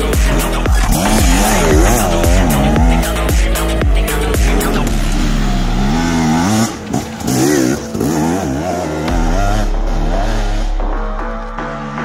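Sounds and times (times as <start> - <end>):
dirt bike engine revving: 0.0 - 10.8.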